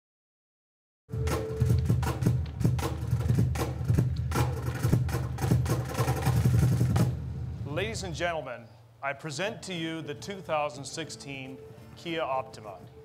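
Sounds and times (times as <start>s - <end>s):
rapid percussive hits: 1.1s - 8.2s
deep engine-like rumble: 6.9s - 8.4s.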